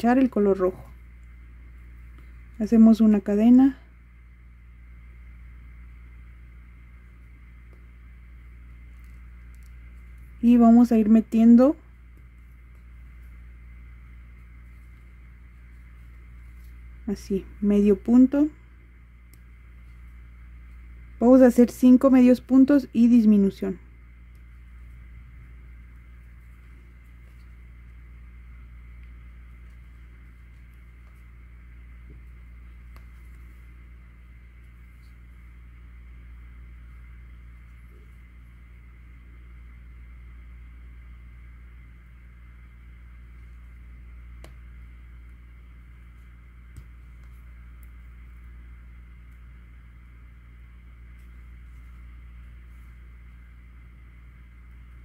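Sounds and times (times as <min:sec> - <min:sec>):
electrical hum: 0:00.0 - 0:55.0.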